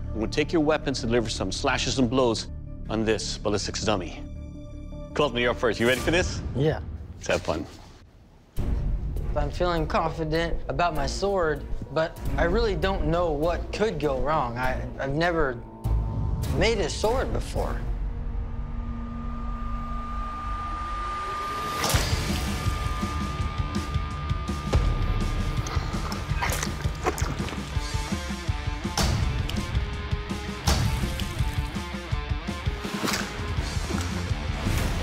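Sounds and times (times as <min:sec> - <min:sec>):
dramatic background music: 0:00.0 - 0:07.6, 0:08.5 - 0:35.0.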